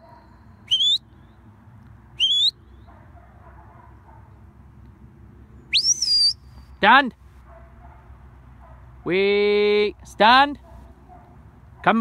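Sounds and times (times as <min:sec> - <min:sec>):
rising whistle: 0:00.6 - 0:01.0, 0:02.2 - 0:02.6, 0:05.7 - 0:06.4.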